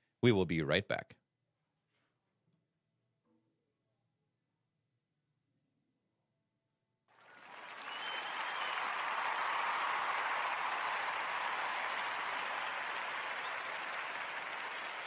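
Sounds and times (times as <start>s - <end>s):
crowd applause: 7.2s - 15.0s.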